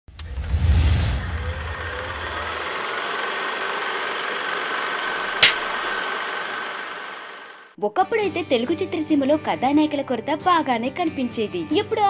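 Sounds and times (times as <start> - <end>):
steady whirring noise: 0.2 - 7.7
sharp clap: 5.4 - 5.8.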